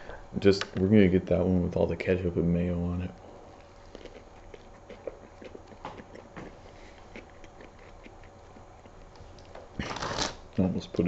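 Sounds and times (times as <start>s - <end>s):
person chewing food: 3.0s - 10.6s.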